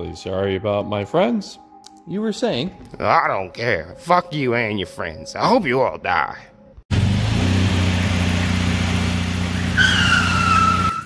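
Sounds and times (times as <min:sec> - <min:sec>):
vehicle engine running: 0:06.9 - 0:11.0
tyres squealing in a skid: 0:09.5 - 0:11.0.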